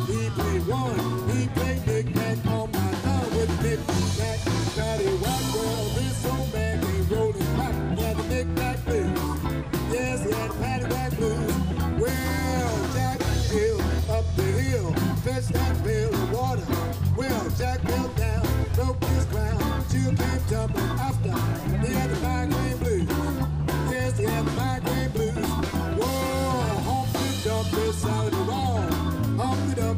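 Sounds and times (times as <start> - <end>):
blues band playing: 0.0 - 29.9
lead guitar bending notes: 0.0 - 29.9.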